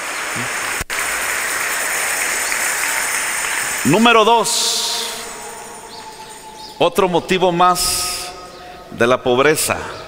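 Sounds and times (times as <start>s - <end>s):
congregation applauding: 0.0s - 6.8s.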